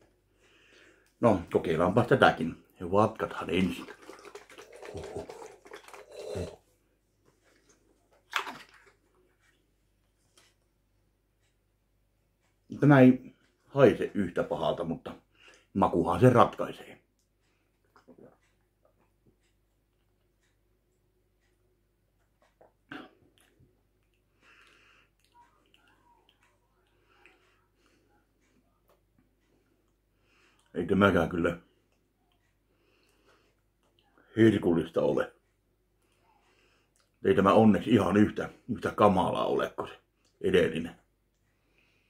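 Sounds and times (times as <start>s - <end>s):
soft mouth noises tasting: 3.9s - 6.7s, 17.2s - 19.5s, 22.2s - 29.0s.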